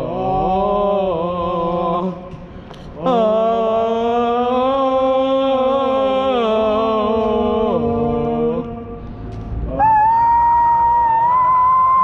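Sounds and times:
man singing falsetto note: 0:09.7 - 0:12.0.

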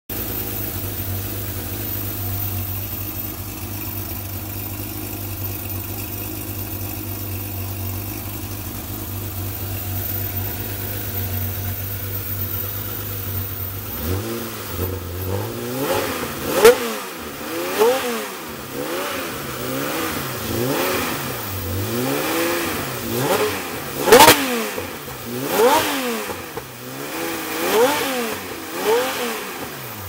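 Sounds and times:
car engine idling: 0:00.1 - 0:30.0.

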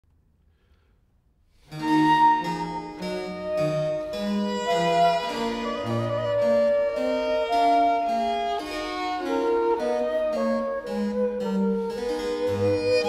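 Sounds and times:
flute melody: 0:01.7 - 0:13.0
violin melody: 0:01.7 - 0:13.0.

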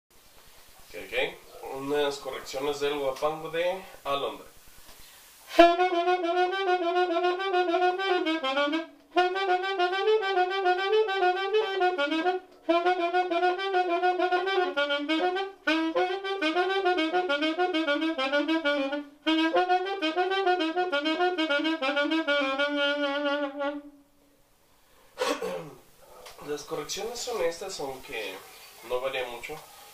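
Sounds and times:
solo saxophone melody: 0:05.5 - 0:24.1.

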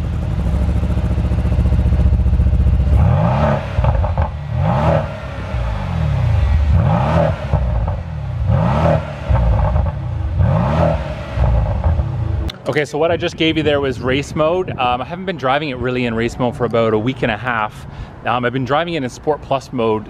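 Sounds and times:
car exhaust revving: 0:00.0 - 0:12.5
exhaust crackles and pops: 0:02.8 - 0:05.1, 0:06.3 - 0:13.5.

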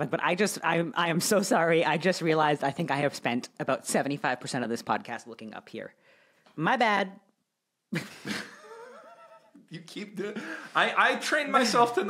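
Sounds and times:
people laughing: 0:08.0 - 0:10.9.

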